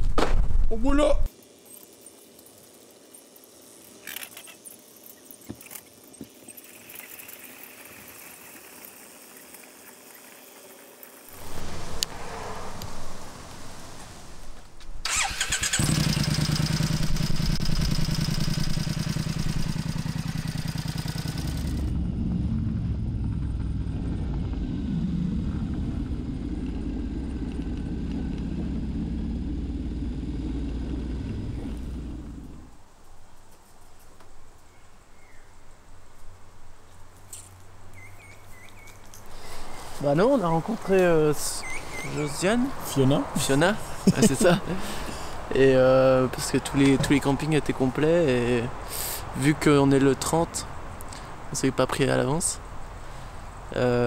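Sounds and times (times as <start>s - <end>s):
motorcycle engine starting and idling: 12.8s - 32.8s.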